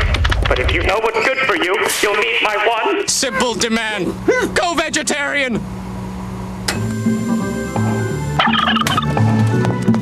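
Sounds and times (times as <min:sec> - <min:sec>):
turkey gobbling: 0:08.4 - 0:09.2.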